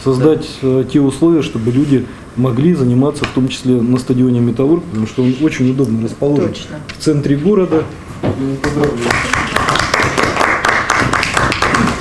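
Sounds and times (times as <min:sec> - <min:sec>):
small group clapping: 0:08.6 - 0:12.0.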